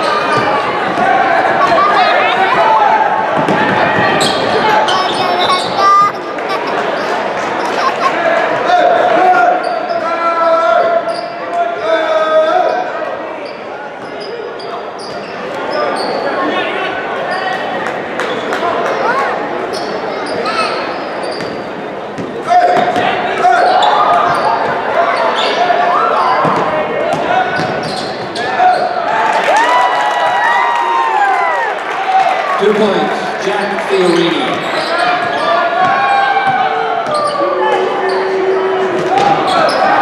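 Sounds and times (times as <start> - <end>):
sneaker squeaks: 0.0 - 2.5, 3.4 - 7.9, 9.5 - 10.2, 11.0 - 11.4, 13.4 - 16.5, 17.3 - 18.6, 19.6 - 29.0, 34.1 - 40.0
players and spectators calling out: 0.0 - 40.0.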